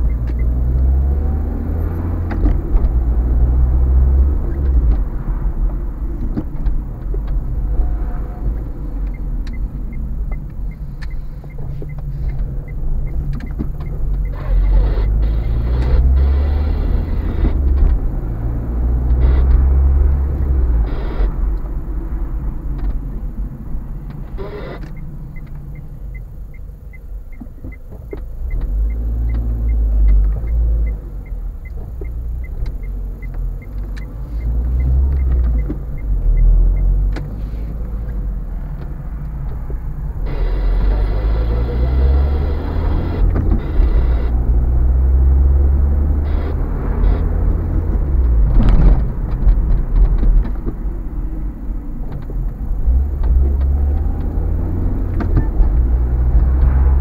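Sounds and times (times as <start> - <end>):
turn indicator ticking: 0.0 - 7.6, 8.4 - 16.4, 24.0 - 56.8
car engine and road rumble: 0.0 - 57.0.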